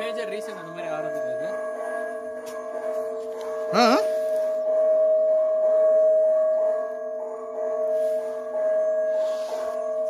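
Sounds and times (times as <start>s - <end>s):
held drone tone: 0.0s - 10.0s.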